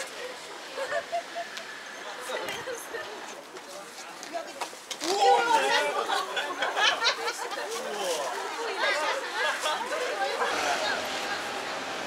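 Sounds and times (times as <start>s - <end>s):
passers-by chatting: 0.0s - 12.0s.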